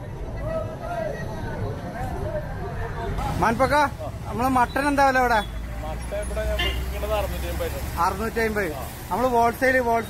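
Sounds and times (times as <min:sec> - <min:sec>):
men talking: 0:00.1 - 0:10.0.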